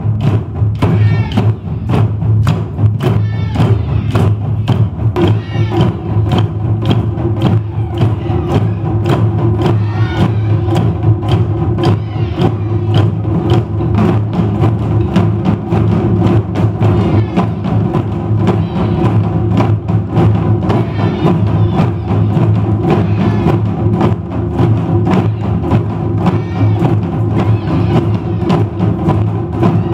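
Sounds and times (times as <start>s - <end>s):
taiko drums playing: 0.0s - 29.9s.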